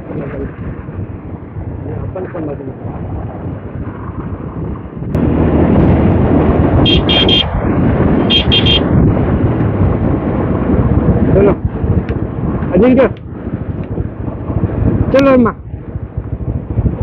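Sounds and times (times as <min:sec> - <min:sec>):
wind rushing over microphone: 0:00.0 - 0:17.0
motorcycle engine running: 0:05.1 - 0:12.6, 0:13.2 - 0:17.0
short high beeps: 0:08.3 - 0:08.8.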